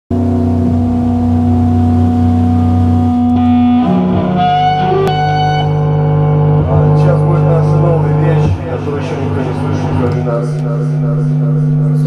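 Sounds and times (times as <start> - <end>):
electric guitar and bass drone: 0.1 - 12.0.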